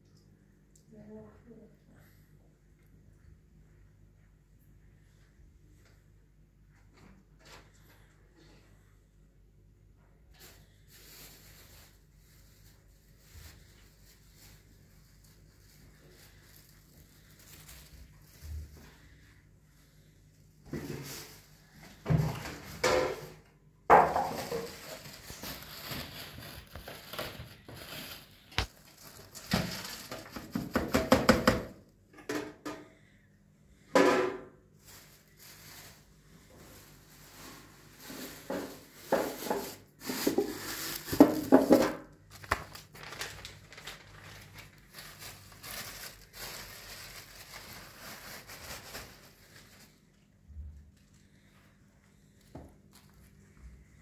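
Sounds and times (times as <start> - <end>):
plastic bags rustling: 10.2 - 19.9, 20.6 - 31.0, 34.7 - 51.6
household items clattering: 20.7 - 28.2, 28.9 - 32.9, 37.9 - 42.1.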